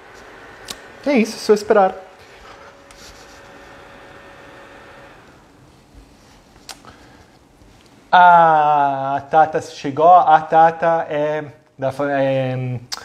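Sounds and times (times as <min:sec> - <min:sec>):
low steady hiss: 0:00.0 - 0:13.0.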